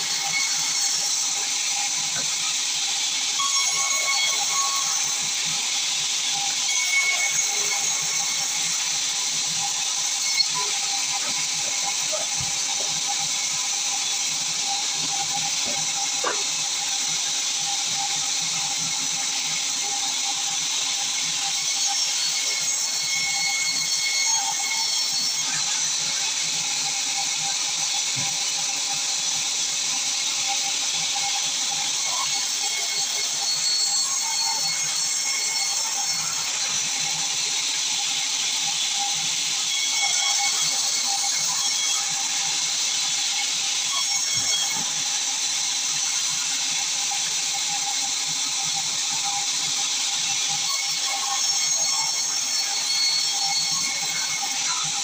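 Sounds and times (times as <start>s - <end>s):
band saw cutting log: 0.0s - 55.0s.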